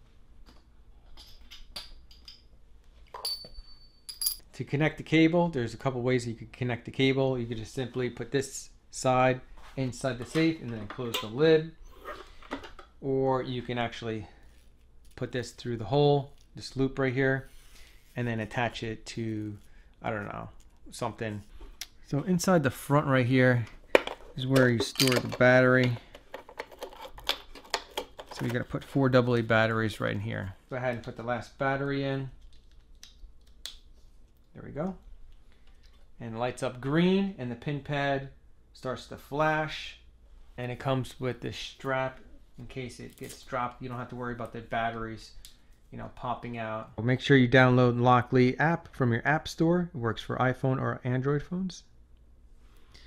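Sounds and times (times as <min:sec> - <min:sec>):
light taps and clinks: 0:01.2 - 0:02.5, 0:03.1 - 0:04.5.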